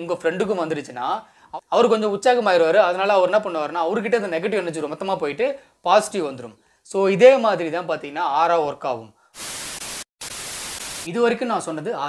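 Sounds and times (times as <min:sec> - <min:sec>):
static hiss: 0:09.4 - 0:11.2.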